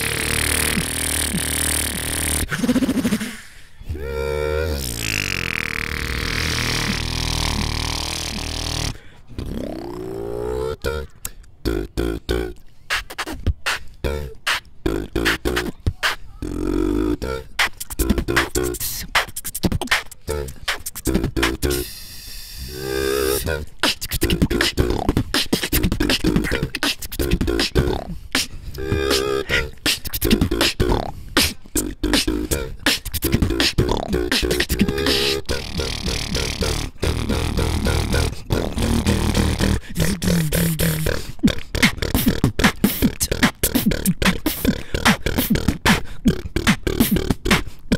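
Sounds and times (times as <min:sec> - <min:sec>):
beatboxing: 0:00.0 - 0:47.9.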